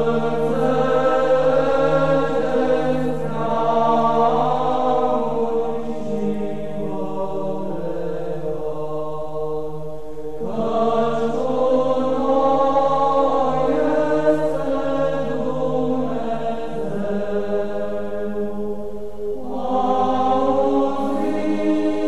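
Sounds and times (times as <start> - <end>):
slow choral chant: 0.0 - 22.0.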